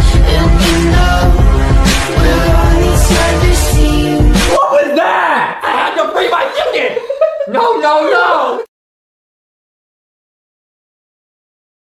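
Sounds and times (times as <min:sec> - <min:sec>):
man speaking: 0:04.6 - 0:08.7.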